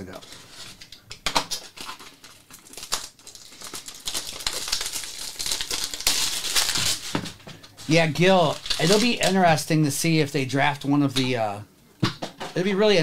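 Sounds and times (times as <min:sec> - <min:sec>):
plastic wrap crinkling: 0:00.0 - 0:09.6.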